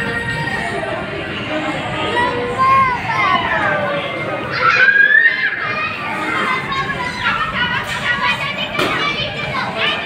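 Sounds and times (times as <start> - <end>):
children calling and shrieking: 0.0 - 10.0
child's high squeal: 4.5 - 5.9.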